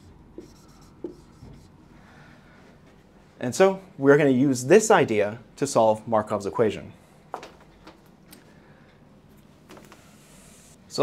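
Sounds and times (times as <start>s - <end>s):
marker writing on whiteboard: 0.0s - 1.8s.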